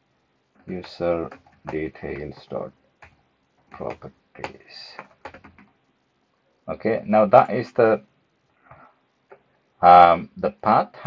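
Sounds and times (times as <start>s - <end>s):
man speaking: 0.7s - 2.7s, 3.7s - 5.2s, 6.7s - 8.0s, 9.8s - 11.0s.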